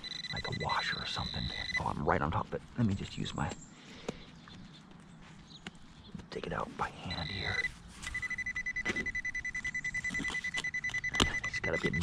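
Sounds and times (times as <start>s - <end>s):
pinpointer beeping rapidly: 0.0s - 2.0s, 7.1s - 12.0s.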